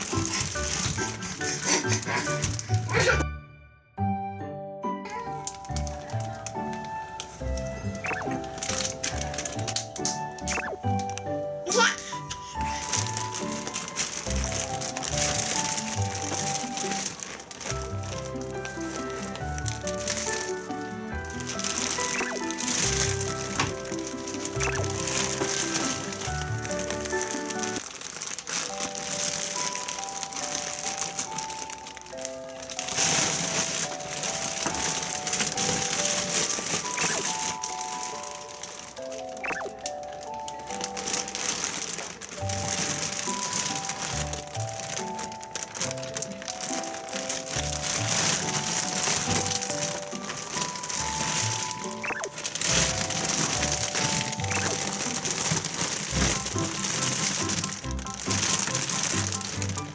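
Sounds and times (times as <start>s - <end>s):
plastic packaging crinkling: 0.0s - 3.2s, 5.1s - 59.9s
plinking melody music: 0.0s - 59.9s.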